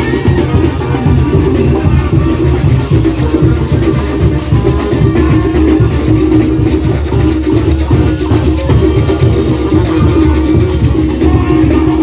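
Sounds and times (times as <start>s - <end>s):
brass band playing loudly: 0.0s - 12.0s
cymbals and drums: 0.0s - 12.0s.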